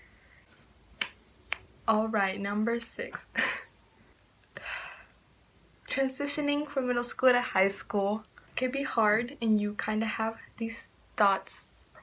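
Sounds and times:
finger snaps: 1.0 - 1.7.

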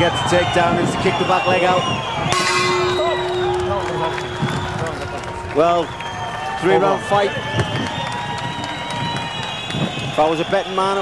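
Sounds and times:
crowd cheering: 0.0 - 11.0
steady horn: 2.3 - 5.9.

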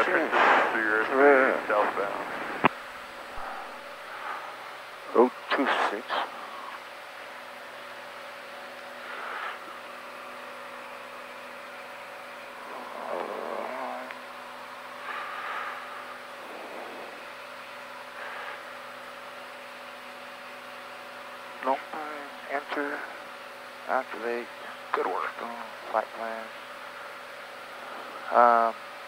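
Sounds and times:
propeller plane engine drone: 0.0 - 29.0.

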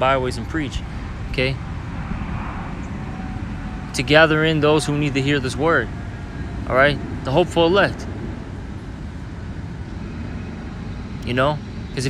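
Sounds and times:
low rumbling background noise: 0.0 - 12.0.

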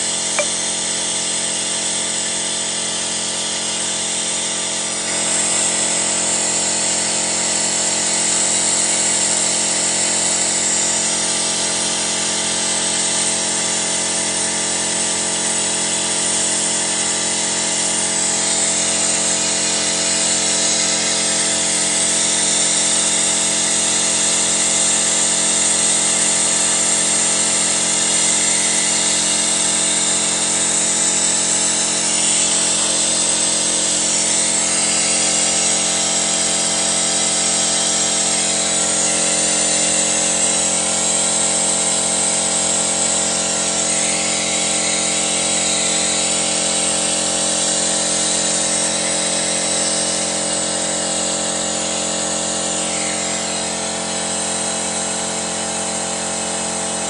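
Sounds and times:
car engine running with whine: 0.0 - 0.6
hose hissing: 16.0 - 55.6.

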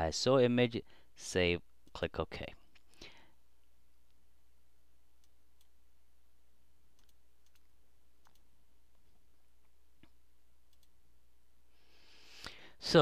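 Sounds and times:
computer mouse clicks: 6.9 - 8.5, 10.0 - 11.0.

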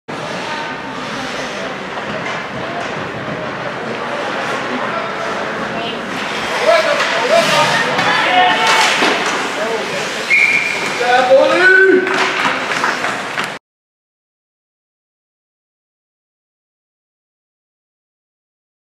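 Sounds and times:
ice rink background noise: 0.1 - 13.6
short whistle blast: 10.3 - 11.0.

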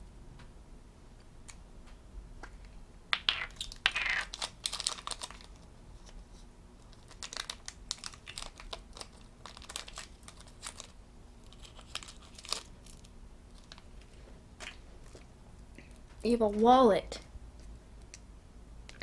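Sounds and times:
plastic wrapping crinkling: 3.4 - 6.2, 6.8 - 15.3.

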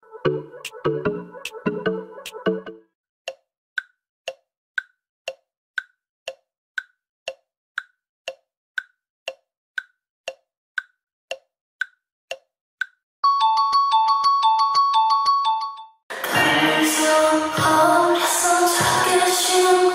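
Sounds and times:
clock ticking: 3.3 - 13.0.

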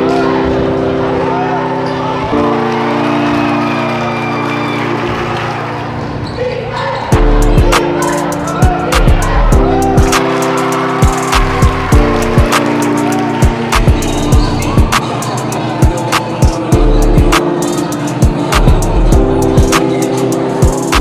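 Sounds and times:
sustained music chords: 7.1 - 21.0.

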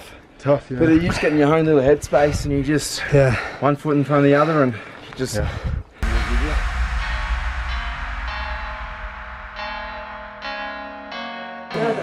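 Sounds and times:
low rumble: 6.0 - 11.0.

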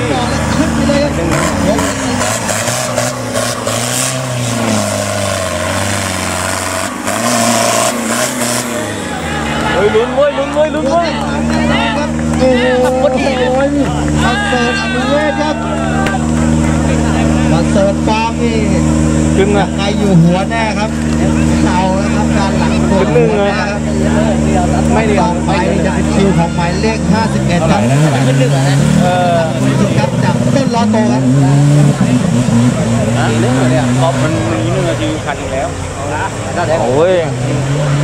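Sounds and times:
man talking: 0.0 - 2.2, 9.1 - 37.6
buggy engine idling: 0.0 - 38.0.

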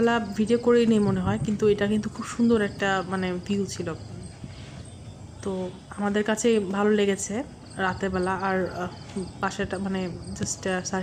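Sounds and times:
woman speaking: 0.0 - 4.4, 5.4 - 11.0
crickets chirping: 0.0 - 11.0.

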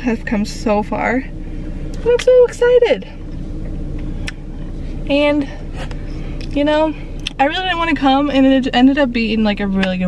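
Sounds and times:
car idling from inside cabin: 0.0 - 10.0.

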